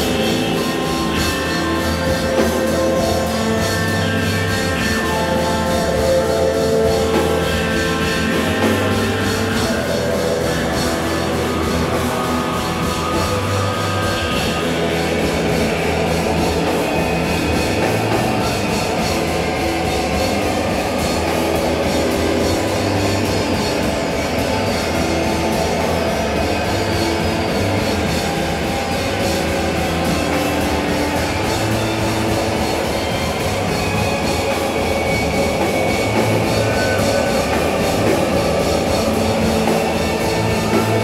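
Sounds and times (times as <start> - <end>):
drum kit: 0.0 - 41.0
electric guitar: 0.0 - 41.0
synthesizer: 0.0 - 41.0.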